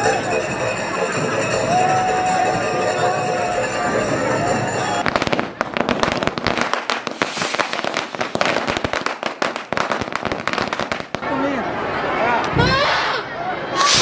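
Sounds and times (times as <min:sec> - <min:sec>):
firecrackers cracking: 0:05.0 - 0:11.4, 0:13.8 - 0:14.0.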